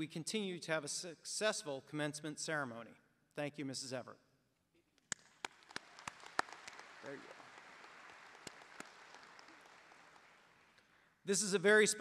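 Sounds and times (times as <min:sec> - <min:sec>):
sharp single claps: 0:05.0 - 0:10.9
audience applause: 0:05.3 - 0:10.8.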